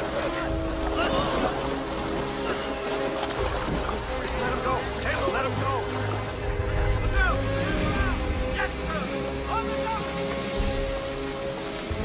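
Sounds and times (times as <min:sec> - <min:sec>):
steady rain: 0:00.0 - 0:12.0
sustained low music notes: 0:00.0 - 0:12.0.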